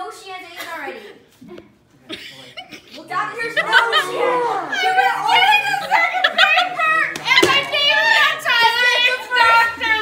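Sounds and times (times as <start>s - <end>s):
young voices talking: 0.0s - 10.0s.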